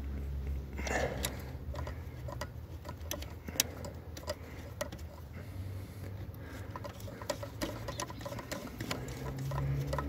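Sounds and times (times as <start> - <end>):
plastic plug clicks and rattles: 1.2 - 5.0.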